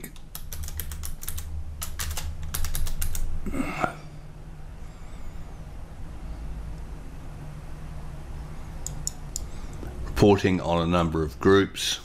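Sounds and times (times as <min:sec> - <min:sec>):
keyboard key clicks: 0:00.0 - 0:03.3.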